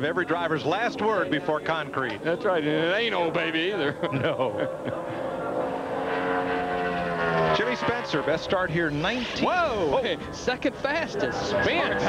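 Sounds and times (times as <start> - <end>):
race car engine at high revs: 1.0 - 12.0.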